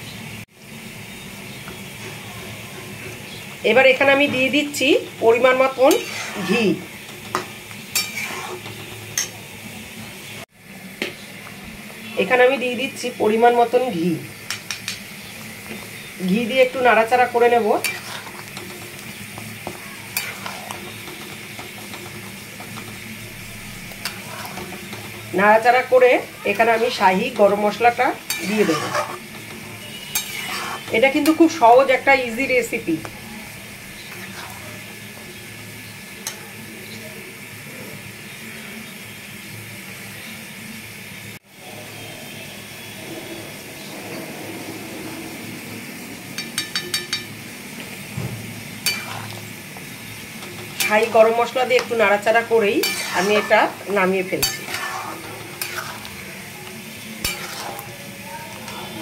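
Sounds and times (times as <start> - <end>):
gravy simmering with soft sizzle: 0.1 - 59.0
spatula scraping and tapping pan: 5.5 - 9.4, 14.4 - 16.1, 17.6 - 25.7, 26.5 - 31.6, 34.0 - 34.8, 46.4 - 47.9, 48.8 - 59.0
metal spatula clicking on pan: 46.4 - 47.3.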